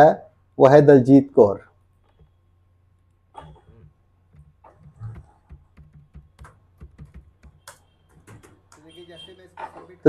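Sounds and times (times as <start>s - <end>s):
keyboard typing: 3.0s - 9.0s.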